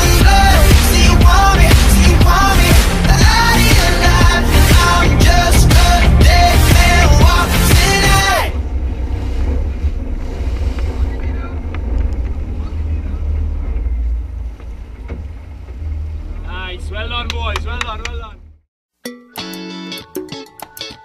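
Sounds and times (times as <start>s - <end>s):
water churning: 0.0s - 17.4s
boat engines running: 0.0s - 18.7s
wind rumble on microphone: 8.5s - 17.6s.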